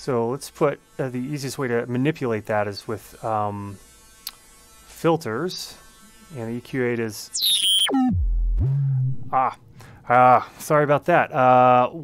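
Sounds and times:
digital feedback tone: 7.3 - 9.4.

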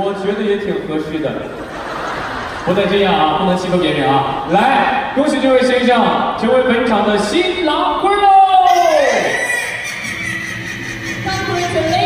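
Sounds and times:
hall ambience: 0.0 - 12.0.

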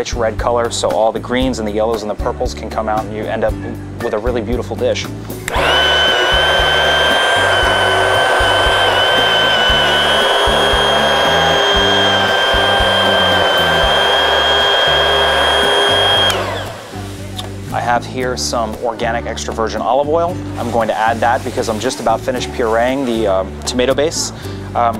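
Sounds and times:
stick blender whining: 5.4 - 17.3.

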